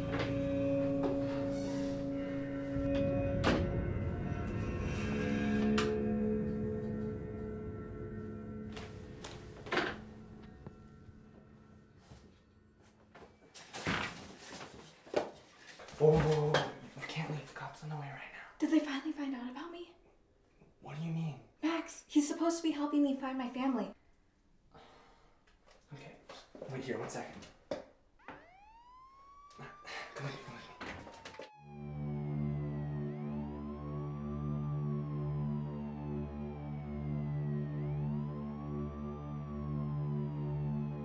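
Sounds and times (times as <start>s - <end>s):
low sustained music: 0.0s - 13.4s, 31.5s - 41.0s
police siren wailing: 28.2s - 41.0s.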